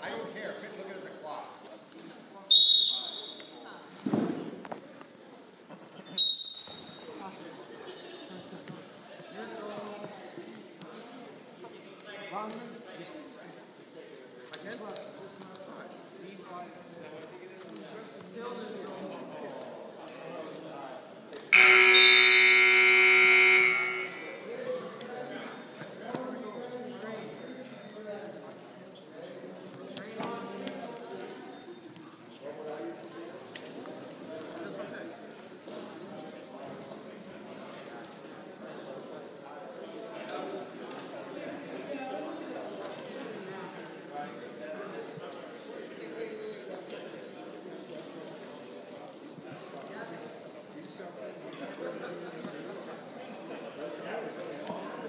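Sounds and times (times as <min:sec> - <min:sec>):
referee's whistle blasts: 0:02.5 - 0:03.5, 0:06.2 - 0:07.1, 0:21.6 - 0:24.4
scoreboard buzzer blaring: 0:21.6 - 0:24.4
voices: 0:21.6 - 0:25.9.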